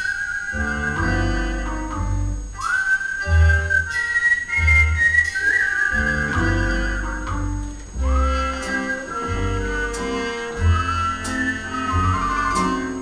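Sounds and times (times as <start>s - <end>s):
jazz band music: 0.0s - 13.0s.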